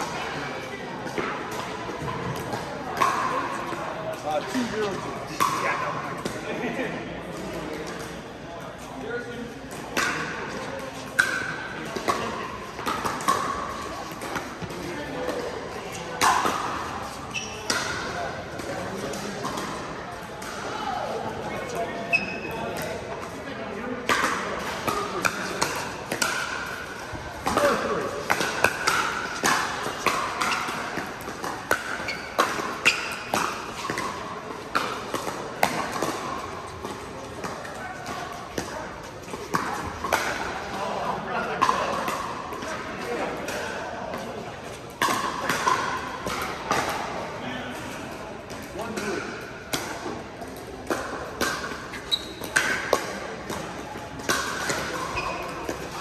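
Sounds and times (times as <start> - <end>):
chatter of players: 0.0 - 56.0.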